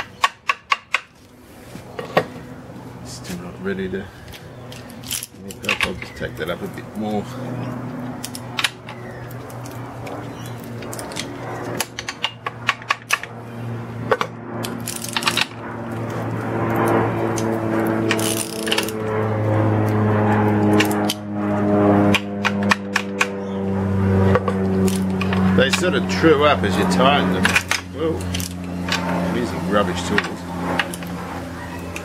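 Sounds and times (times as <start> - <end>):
socket ratchet clicking: 18.1 - 19.0
spanner clinking: 18.1 - 19.0, 27.4 - 29.1.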